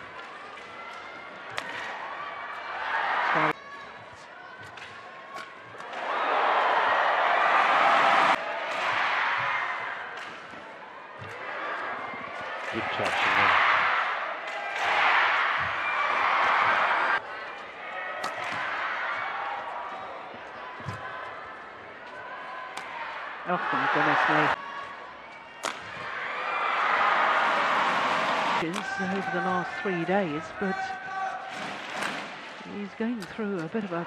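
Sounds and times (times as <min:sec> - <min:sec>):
arena crowd noise: 0:00.0 - 0:34.0
racket striking shuttlecock: 0:18.2 - 0:18.8, 0:25.6 - 0:26.0.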